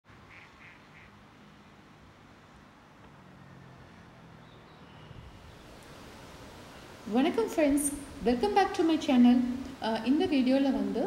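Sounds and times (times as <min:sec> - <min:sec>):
duck quacking faintly: 0:00.3 - 0:01.2.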